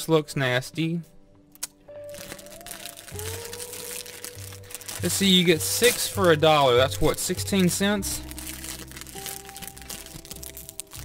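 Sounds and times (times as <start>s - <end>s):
soft background music: 0.0s - 11.0s
plastic wrapper crackling: 1.6s - 11.0s.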